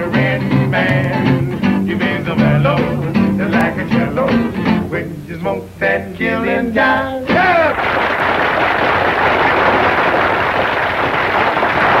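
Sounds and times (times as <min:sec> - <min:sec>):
audience applause: 0:07.4 - 0:12.0.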